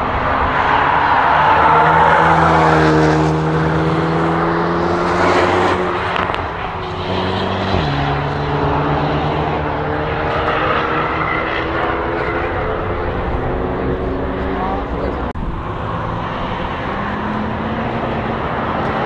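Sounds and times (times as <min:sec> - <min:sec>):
car engines racing: 0:00.0 - 0:19.0
tyre and road noise: 0:00.0 - 0:19.0.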